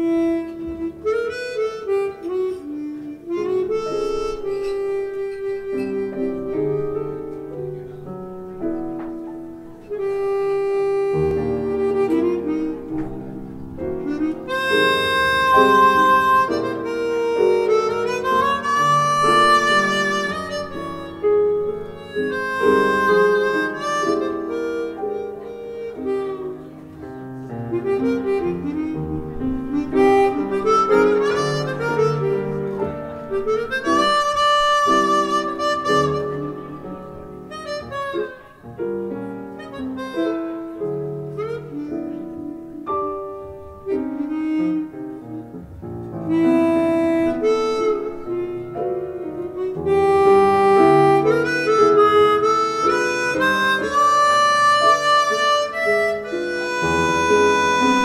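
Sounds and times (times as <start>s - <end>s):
chromatic harmonica ballad melody: 0.0s - 58.0s
piano: 0.0s - 58.0s
double bass: 9.9s - 26.4s, 27.6s - 42.8s, 43.9s - 58.0s.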